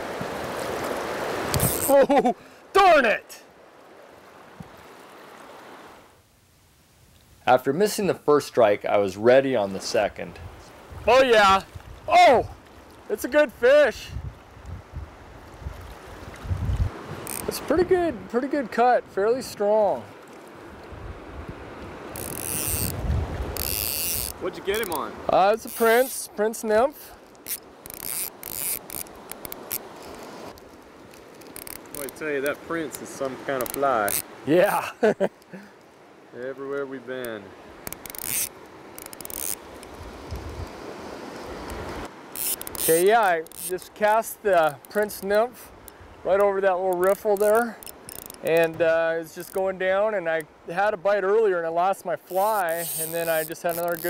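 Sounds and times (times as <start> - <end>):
flowing river water: 0.0 - 54.0
fishing reel clicking: 1.5 - 1.9, 17.2 - 17.6, 22.2 - 25.0, 25.6 - 26.2, 27.2 - 32.6, 33.6 - 34.3, 37.8 - 40.6, 41.7 - 43.8, 46.9 - 48.8, 52.3 - 54.0.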